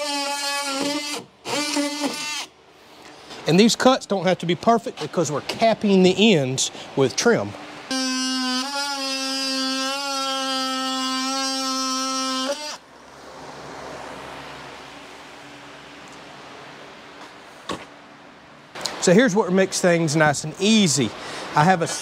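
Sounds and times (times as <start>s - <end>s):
multi-tool cutting plywood: 0.0s - 2.5s, 7.9s - 12.8s.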